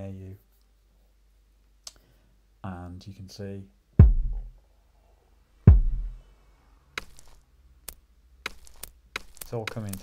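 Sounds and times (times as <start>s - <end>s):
deep kick drum hits: 4.0s - 4.6s, 5.7s - 6.2s.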